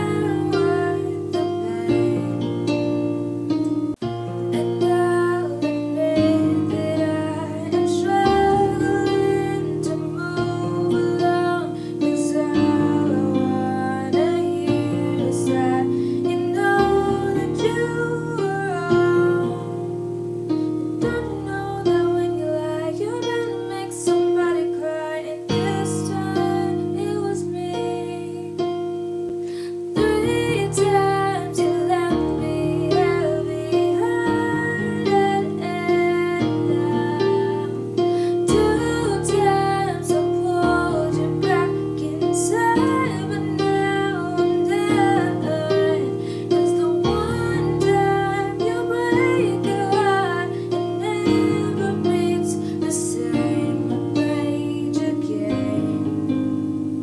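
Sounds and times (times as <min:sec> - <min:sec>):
girl singing: 0:00.0 - 0:03.3, 0:04.4 - 0:56.6
electronic keyboard piano chords: 0:00.0 - 0:57.0.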